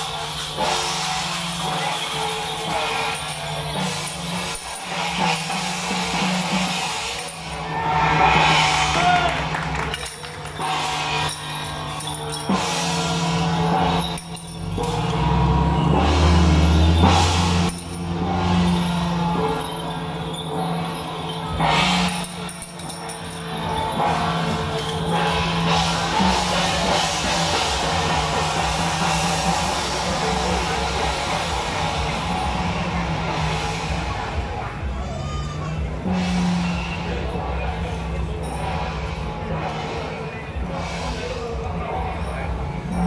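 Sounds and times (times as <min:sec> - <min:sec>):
jingling metal: 0:00.0 - 0:09.2, 0:09.8 - 0:34.2, 0:36.1 - 0:43.0
drums: 0:00.0 - 0:43.0
procession music with percussion: 0:00.0 - 0:43.0
bright cymbal crash: 0:10.6 - 0:34.5.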